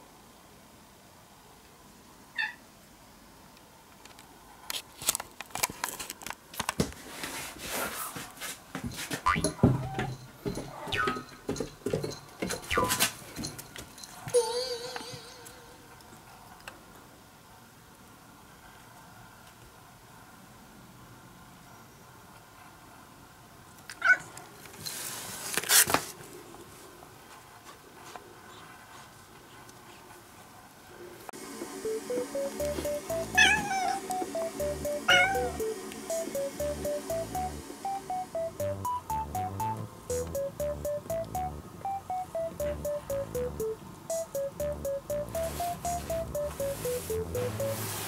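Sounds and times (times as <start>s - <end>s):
cat meowing: 33.4s - 34.0s, 35.1s - 35.4s.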